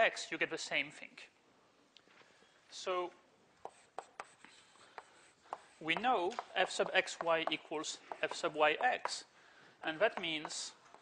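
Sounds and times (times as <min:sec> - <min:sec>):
chalk scraping: 0:03.6 - 0:09.3
chalk tapping on blackboard: 0:03.6 - 0:09.3, 0:10.1 - 0:11.0.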